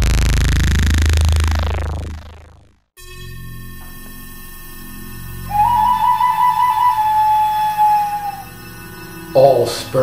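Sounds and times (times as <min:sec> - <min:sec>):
recorder playing high note: 0:03.0 - 0:10.0.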